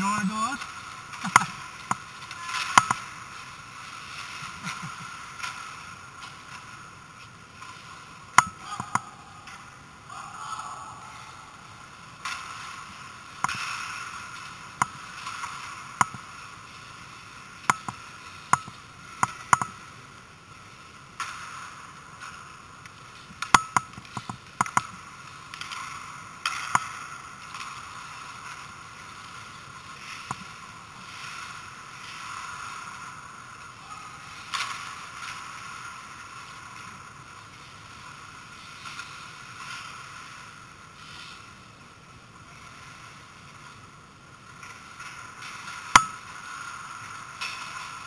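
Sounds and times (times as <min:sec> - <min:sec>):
skates scraping on ice: 0:00.0 - 0:10.2, 0:11.1 - 0:48.0
steady hiss: 0:00.0 - 0:48.0
hockey stick and puck clacks: 0:00.6 - 0:06.7, 0:07.5 - 0:09.8, 0:12.0 - 0:16.9, 0:17.6 - 0:20.0, 0:21.1 - 0:41.5, 0:44.5 - 0:48.0.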